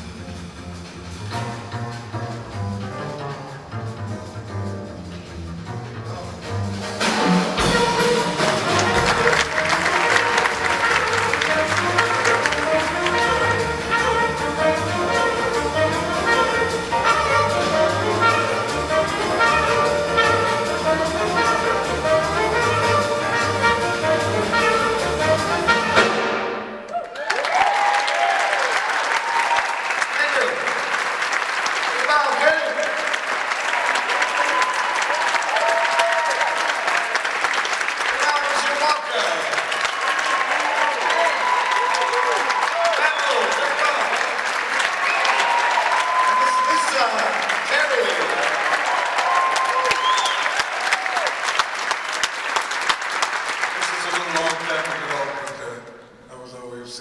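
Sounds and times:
audience applauding: 7.5 - 21.8, 26.8 - 55.8.

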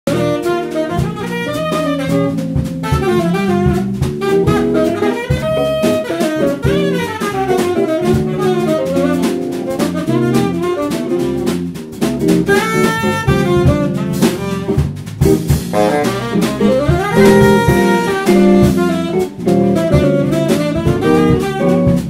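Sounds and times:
jazz band playing: 0.1 - 22.0.

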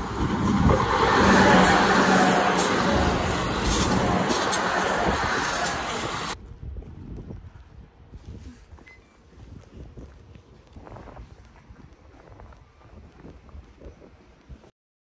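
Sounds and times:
train rumbling on rails: 0.0 - 6.4.

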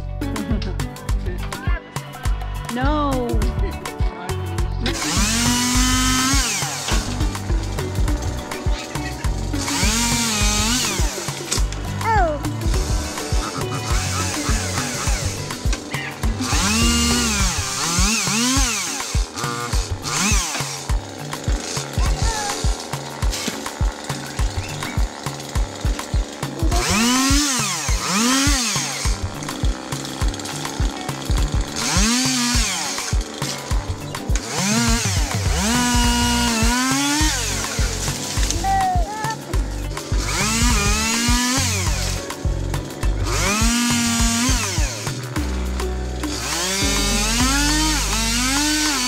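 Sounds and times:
background music with steady beat: 0.0 - 49.0
chainsaw revving: 4.8 - 49.0.

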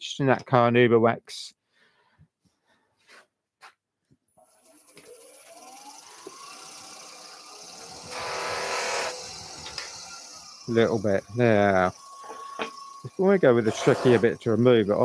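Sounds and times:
lathe motor whining: 4.5 - 15.0.

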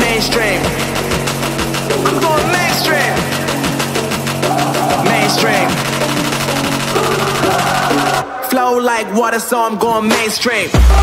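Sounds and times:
hip hop beat with low notes: 0.0 - 11.0
person rapping: 0.0 - 11.0.

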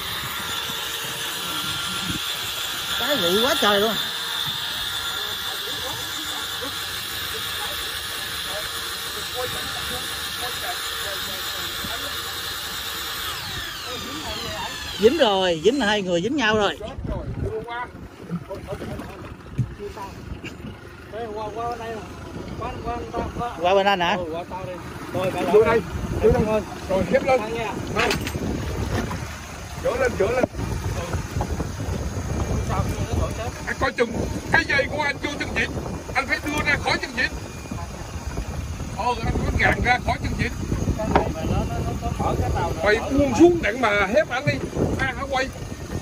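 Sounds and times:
small motor whining: 0.0 - 16.8
water noise: 0.0 - 46.0
wind: 0.0 - 46.0.

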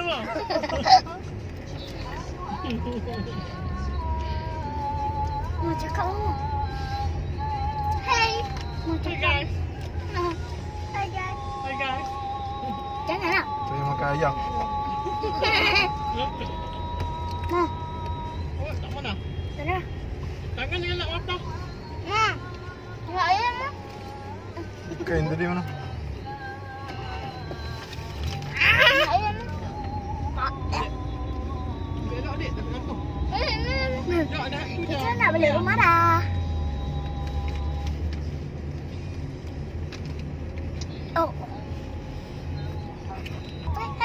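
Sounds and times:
car hum: 0.0 - 44.0
music: 1.9 - 18.5, 29.2 - 34.8
children squealing and chattering: 28.3 - 29.6.

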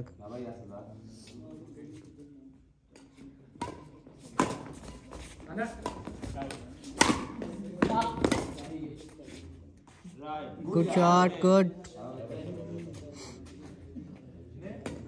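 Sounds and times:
racquets hitting shuttlecock: 3.5 - 8.8
players' voices: 5.2 - 15.0.

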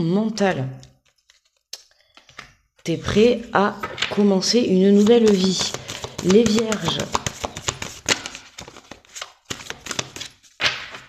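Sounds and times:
cards clicking while shuffled: 5.0 - 11.0.

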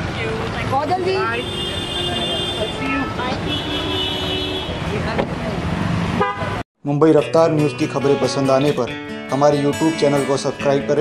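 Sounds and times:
street traffic noise: 0.0 - 11.0
vehicle horn blasts: 1.2 - 4.8, 6.2 - 6.6.

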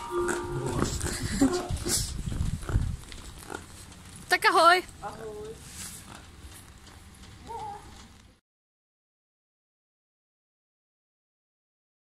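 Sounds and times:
low rumbling noise: 0.0 - 5.1
person making squealing noises: 0.3 - 2.2.

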